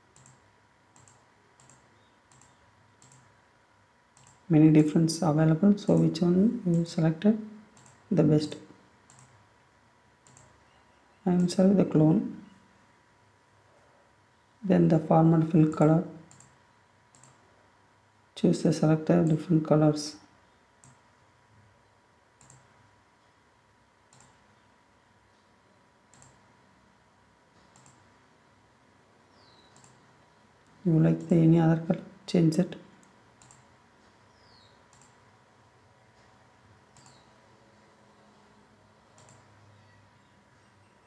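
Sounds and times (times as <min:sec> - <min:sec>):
computer mouse clicks: 0:00.1 - 0:03.4, 0:04.1 - 0:04.5, 0:07.7 - 0:08.1, 0:09.0 - 0:09.4, 0:10.2 - 0:10.7, 0:16.3 - 0:17.4, 0:20.8 - 0:21.0, 0:22.4 - 0:22.7, 0:24.1 - 0:24.6, 0:26.1 - 0:26.5, 0:27.6 - 0:28.1, 0:29.5 - 0:31.3, 0:33.0 - 0:33.7, 0:34.4 - 0:35.3, 0:36.9 - 0:37.4, 0:39.1 - 0:39.6.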